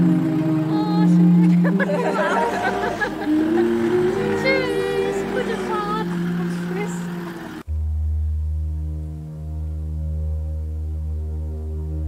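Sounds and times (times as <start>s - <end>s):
music with voices: 0.0s - 7.7s
low steady held chord: 0.0s - 12.0s.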